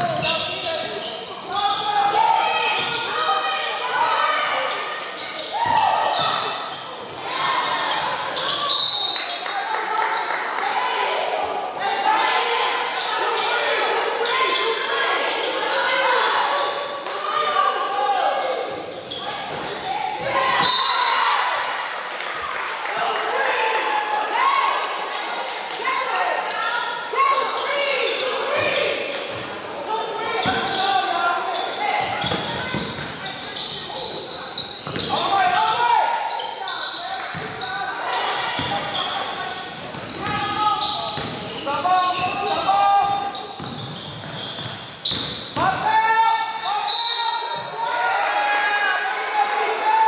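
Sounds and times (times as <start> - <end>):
people calling out and talking: 0.0 - 50.0.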